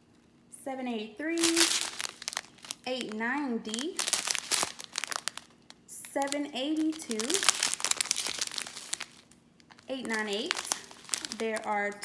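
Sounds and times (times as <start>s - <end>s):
plastic bags crinkling: 1.3s - 12.0s.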